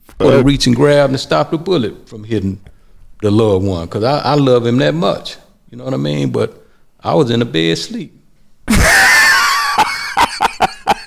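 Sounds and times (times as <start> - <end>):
man laughing hard: 8.7 - 11.0.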